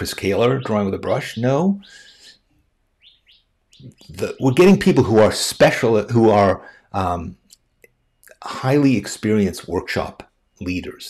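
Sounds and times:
small bird chirping: 0:00.0 - 0:06.0, 0:07.2 - 0:11.0.

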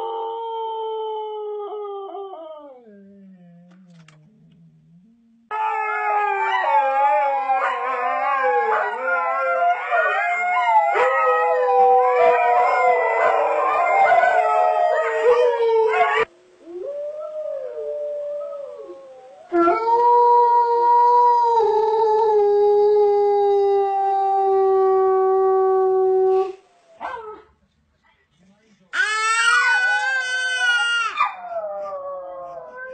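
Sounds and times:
dogs howling: 0:05.5 - 0:27.4, 0:29.0 - 0:32.9.

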